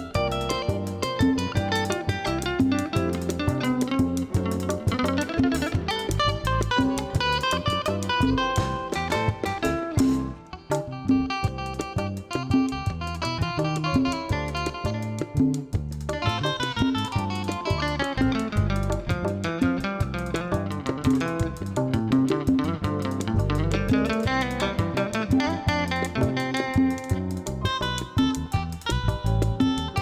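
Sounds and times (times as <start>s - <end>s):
bass: 0.0s - 30.0s
guitar picked melody: 0.0s - 30.0s
hand drums: 0.0s - 30.0s.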